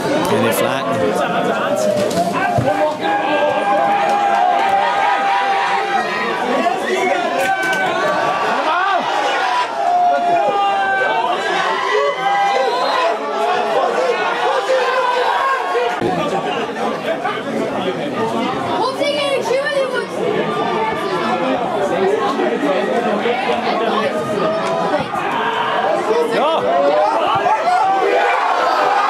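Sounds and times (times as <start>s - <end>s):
chatter of many voices: 0.0s - 29.0s.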